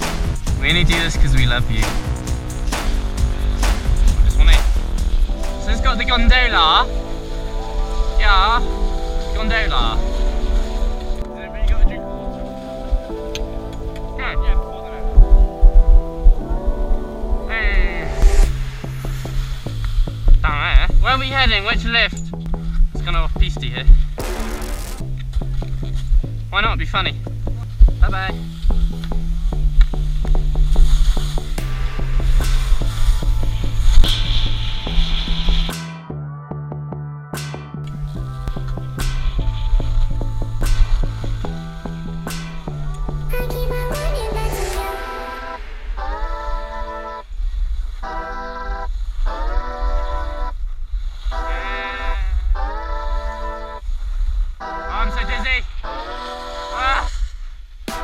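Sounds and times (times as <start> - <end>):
steady low bass: 0.0 - 12.4, 13.1 - 46.9
wind rumble: 0.0 - 35.8, 37.9 - 51.3
background music with steady beat: 0.0 - 47.4
song with held phrases: 42.9 - 47.3.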